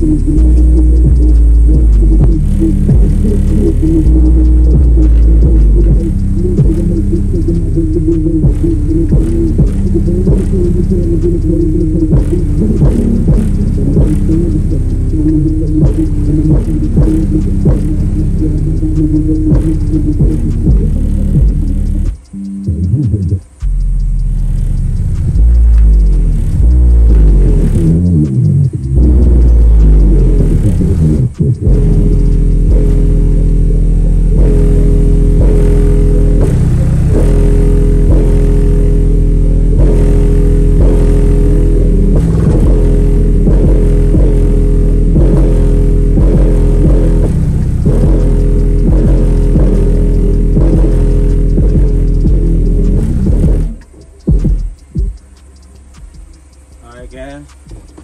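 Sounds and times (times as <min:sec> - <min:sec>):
subwoofer playing bass-heavy music: 0:00.0 - 0:58.0.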